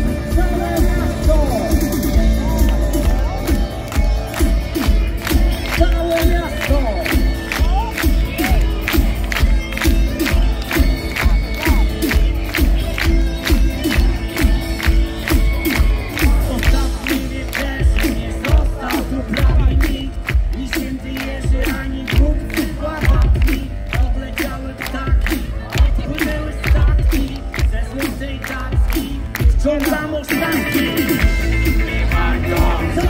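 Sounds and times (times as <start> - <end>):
crowd cheering and shouting: 0.0 - 33.0
live rock band: 0.0 - 33.0.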